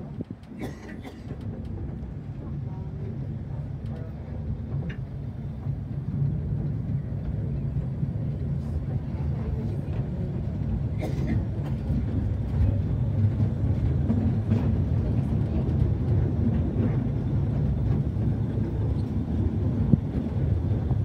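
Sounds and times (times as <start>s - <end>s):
train wheels rumbling on track: 0.0s - 21.0s.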